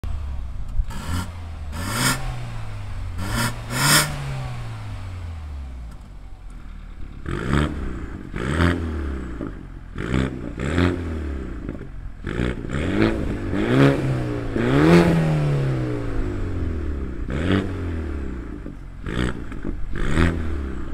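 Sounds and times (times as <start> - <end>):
car exhaust revving: 0.0 - 20.9.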